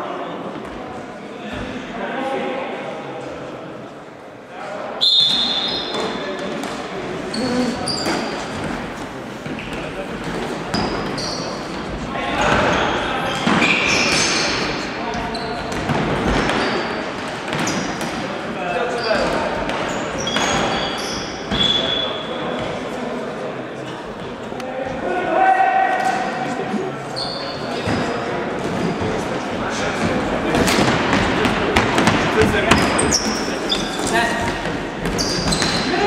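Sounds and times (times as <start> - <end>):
referee's whistle: 5.0 - 6.0.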